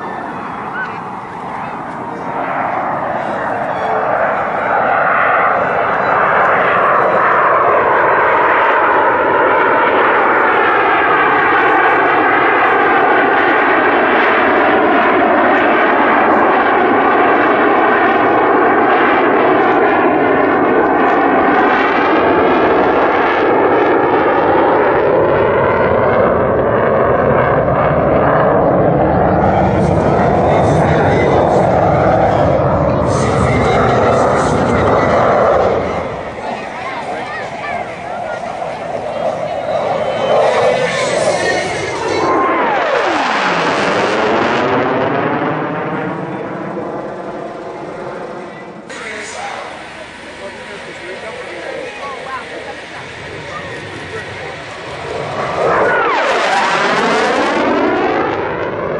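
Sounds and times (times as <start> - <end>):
fighter jet passing overhead: 0.0 - 58.9
afterburners hissing: 48.9 - 55.5.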